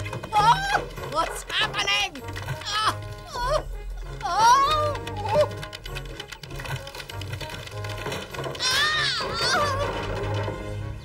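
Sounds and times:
dramatic cartoon music: 0:00.0 - 0:11.0
wood and tiles crashing: 0:00.0 - 0:11.0.

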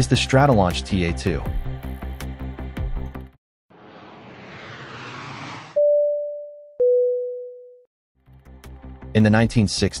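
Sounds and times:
whoosh of noise: 0:03.7 - 0:05.9
electronic tone: 0:04.4 - 0:07.8.

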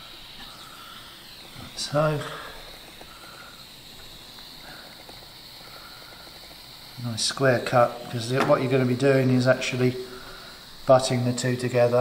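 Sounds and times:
hot knife hissing through rope: 0:00.0 - 0:12.0.

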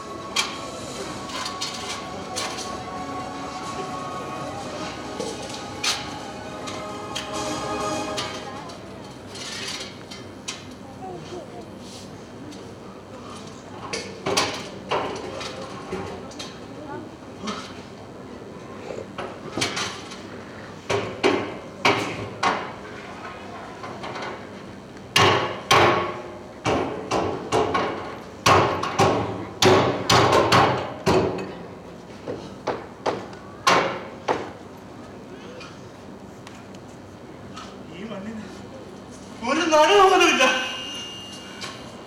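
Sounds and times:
hammer strikes on metal: 0:25.2 - 0:31.3.

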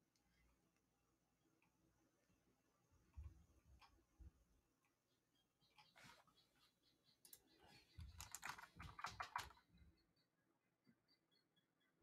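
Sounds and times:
faint keyboard typing: 0:07.2 - 0:09.6.

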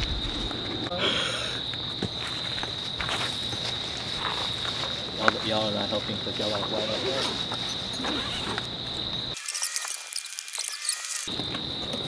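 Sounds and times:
crickets chirring: 0:00.0 - 0:12.0
rustles on grass: 0:02.1 - 0:08.6.

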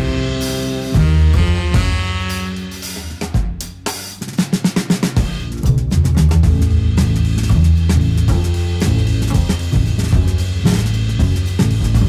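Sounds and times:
drum fill: 0:00.0 - 0:12.0
jazz band playing: 0:00.0 - 0:12.0.

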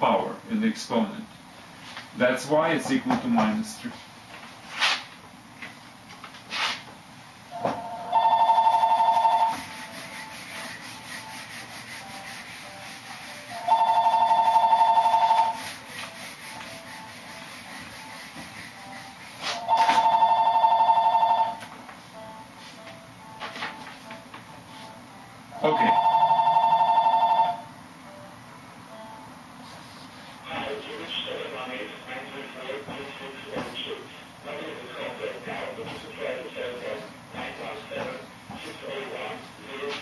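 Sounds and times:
eraser rubbing on whiteboard: 0:06.5 - 0:06.9, 0:09.1 - 0:20.0
telephone ringing: 0:07.6 - 0:09.7, 0:13.5 - 0:15.6, 0:19.6 - 0:21.6, 0:25.6 - 0:27.7.

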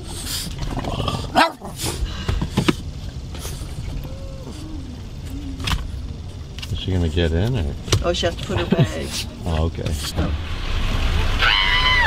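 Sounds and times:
car idling rumble: 0:00.0 - 0:12.0.

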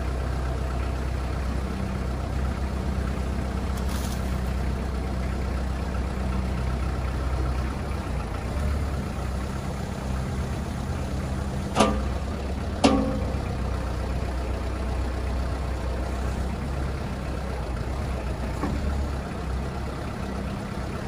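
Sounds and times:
diesel engine running: 0:00.0 - 0:21.0
sharp metal clanks: 0:11.8 - 0:12.2, 0:12.8 - 0:13.6.

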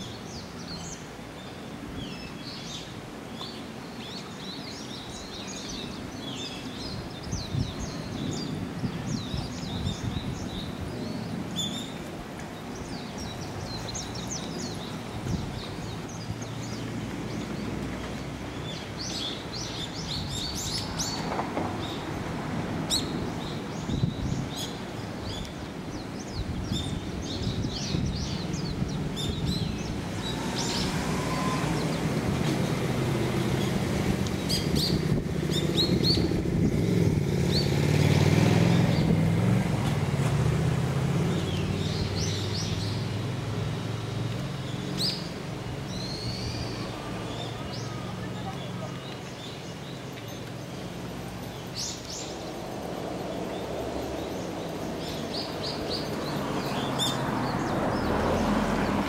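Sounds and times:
small birds chirping: 0:00.0 - 0:39.2, 0:41.2 - 0:59.0.

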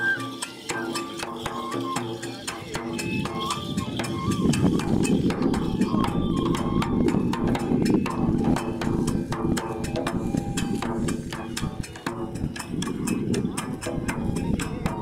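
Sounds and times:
drum and percussion rhythm: 0:00.0 - 0:15.0
flute melody: 0:00.0 - 0:15.0.

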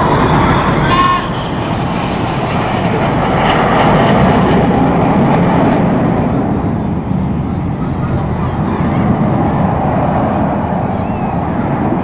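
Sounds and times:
jet aircraft roaring past: 0:00.0 - 0:12.0.

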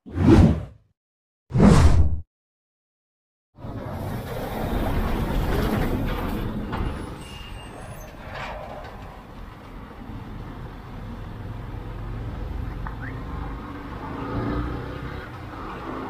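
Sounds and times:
bus passing: 0:03.6 - 0:16.0
road rumble: 0:03.6 - 0:16.0.

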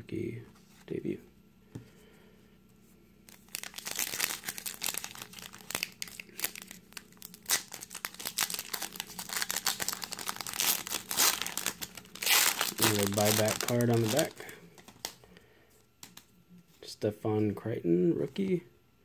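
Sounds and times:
foil wrapper tearing and crinkling: 0:03.3 - 0:15.2.

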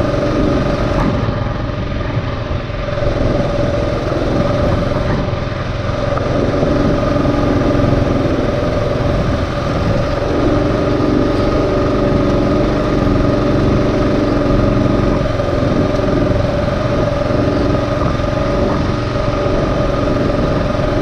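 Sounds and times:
motorcycle engine running: 0:00.0 - 0:21.0.

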